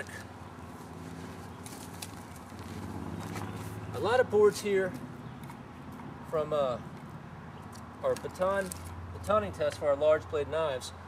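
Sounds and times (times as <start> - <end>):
light clicks and rustles: 7.0 - 9.8.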